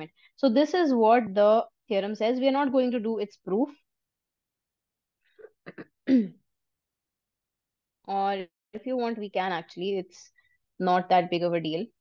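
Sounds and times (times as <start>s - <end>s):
woman clearing her throat: 5.4s - 6.4s.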